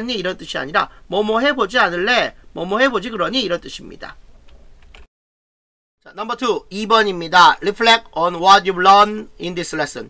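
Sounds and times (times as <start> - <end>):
small clicks: 4.4 - 5.1.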